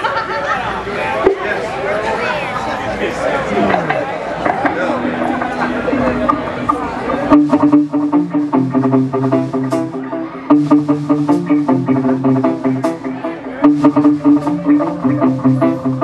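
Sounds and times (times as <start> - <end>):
rock band playing a riff: 4.4 - 16.0.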